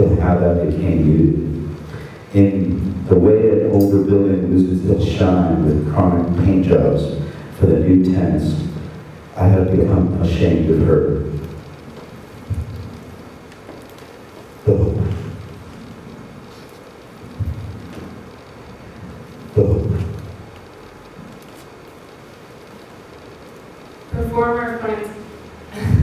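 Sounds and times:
low booming thuds: 0:12.4 - 0:13.0, 0:17.4 - 0:17.9.

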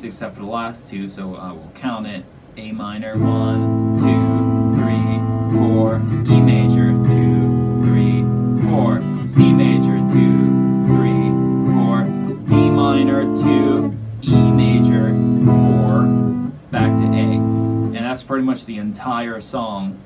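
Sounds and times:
electric guitar strumming chords: 0:03.1 - 0:18.2.

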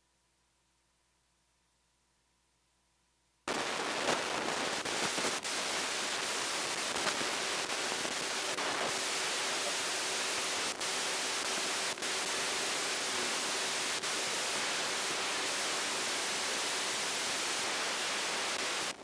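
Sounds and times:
loud static hiss: 0:00.0 - 0:19.0.

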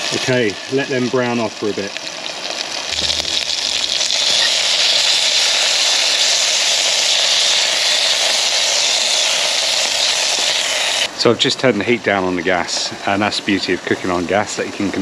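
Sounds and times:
sausage sizzling in hot oil: 0:00.0 - 0:11.2.

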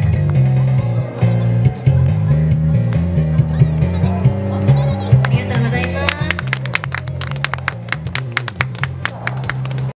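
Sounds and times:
music with low bass notes: 0:00.0 - 0:09.9
audience clapping: 0:05.1 - 0:10.0.

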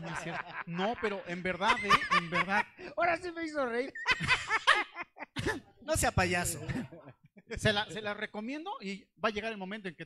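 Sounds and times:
person laughing: 0:04.0 - 0:05.7.

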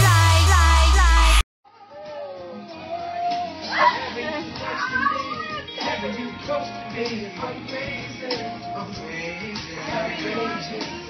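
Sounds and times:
excited voices: 0:01.8 - 0:06.3.

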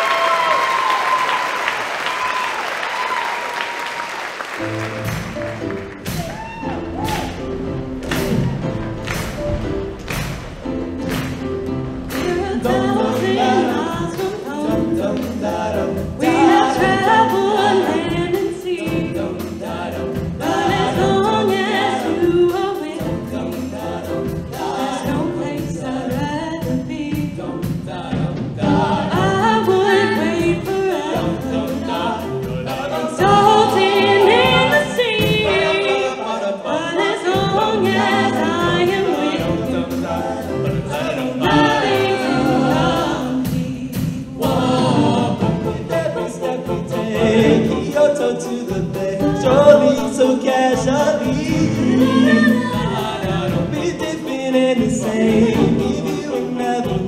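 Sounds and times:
show choir singing: 0:00.0 - 0:57.0
live band with drums: 0:02.1 - 0:36.0, 0:37.2 - 0:57.0.

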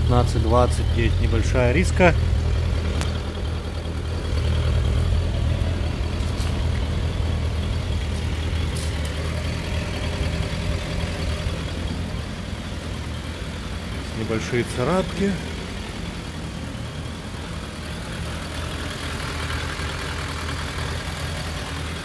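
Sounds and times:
motorcycle engine idling: 0:00.0 - 0:22.0.

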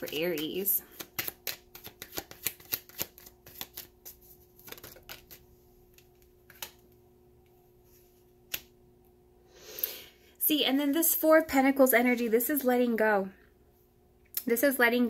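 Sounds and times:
cards being shuffled: 0:00.0 - 0:07.0.

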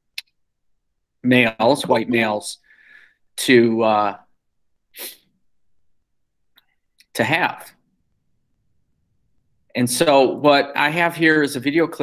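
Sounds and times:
short sharp breath: 0:02.6 - 0:03.3, 0:05.0 - 0:05.3.

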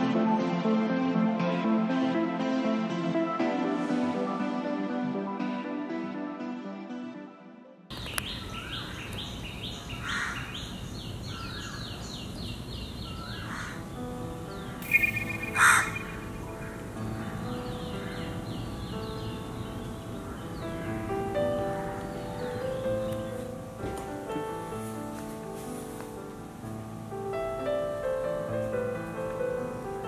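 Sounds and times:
soft music: 0:00.0 - 0:08.4, 0:13.5 - 0:30.0
crows cawing: 0:10.0 - 0:10.6, 0:13.2 - 0:13.9, 0:14.9 - 0:16.8
small bird chirping: 0:14.8 - 0:19.8.

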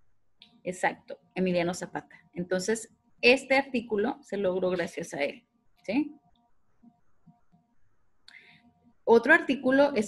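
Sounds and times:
woman breathing in: 0:08.3 - 0:08.8.

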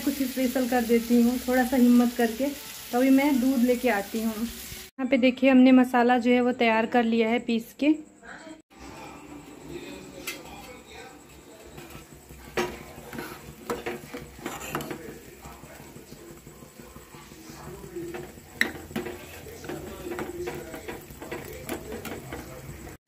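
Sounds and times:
ladle stirring milk in a pot: 0:08.8 - 0:23.0.

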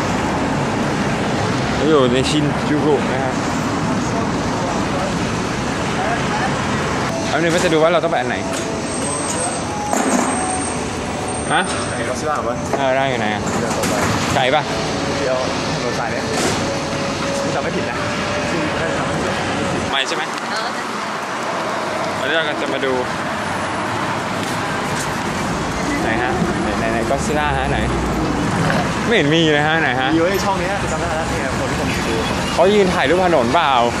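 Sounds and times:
city street traffic: 0:00.0 - 0:34.0.

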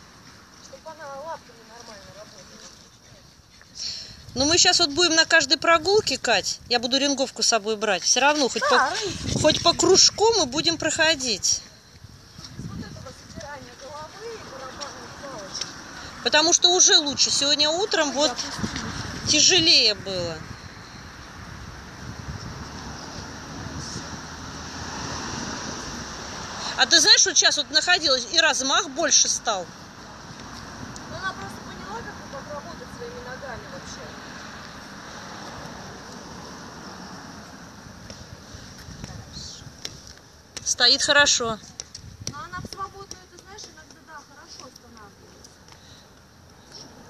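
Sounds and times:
wind buffeting microphone: 0:08.5 - 0:26.2, 0:37.9 - 0:40.7, 0:41.4 - 0:43.6
high hiss of outdoor air: 0:20.3 - 0:26.9, 0:29.7 - 0:42.8.

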